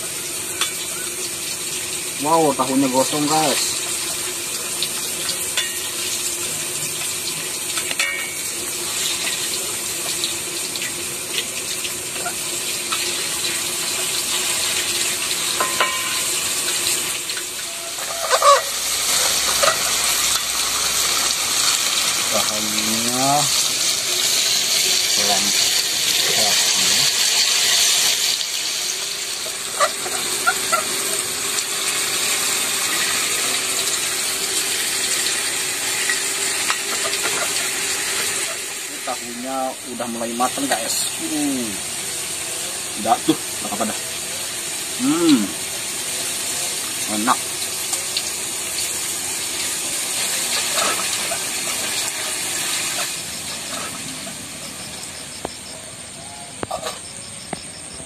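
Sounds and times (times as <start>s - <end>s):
tofu sizzling in hot oil: 0.0s - 57.8s
spatula knocking and scraping wok: 7.7s - 8.5s, 15.4s - 16.8s.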